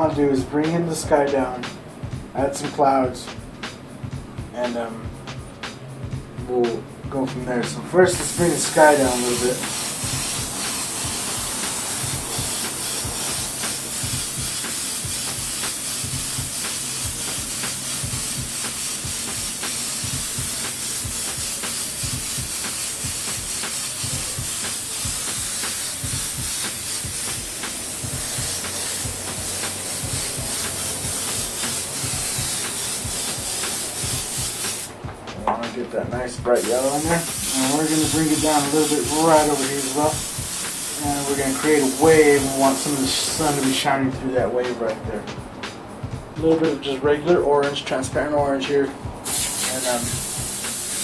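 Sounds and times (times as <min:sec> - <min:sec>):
airbrush spraying hiss: 0:08.0 - 0:35.0, 0:36.5 - 0:44.0, 0:49.2 - 0:51.0.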